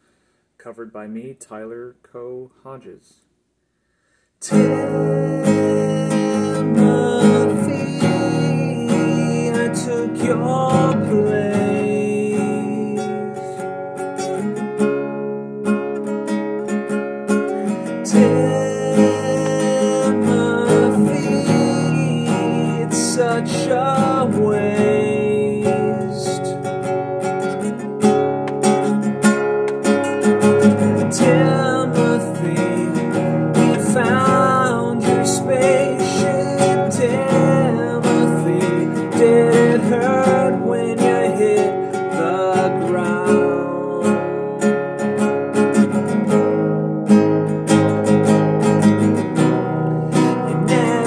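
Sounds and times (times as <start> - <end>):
classical guitar strummed and picked: 4.4 - 51.0.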